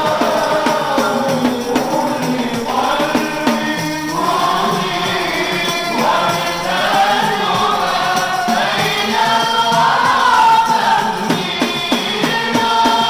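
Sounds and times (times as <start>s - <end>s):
frame drums with jingles: 0.0s - 13.0s
group voices singing: 0.0s - 13.0s.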